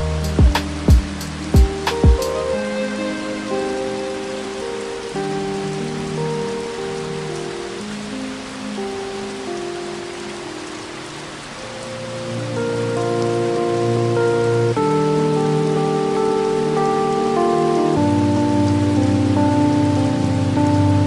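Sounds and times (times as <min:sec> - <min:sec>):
heavy rain hiss: 0:00.0 - 0:21.0
soft music of held chords: 0:00.0 - 0:21.0.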